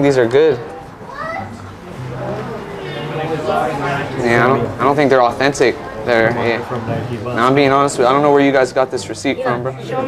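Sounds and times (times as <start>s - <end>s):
indistinct voices talking quietly: 0.0s - 10.0s.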